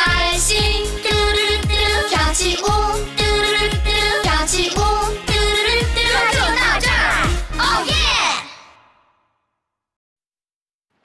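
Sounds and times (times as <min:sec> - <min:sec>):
backing music: 0:00.0 - 0:08.3
children's song sung note: 0:00.0 - 0:08.6.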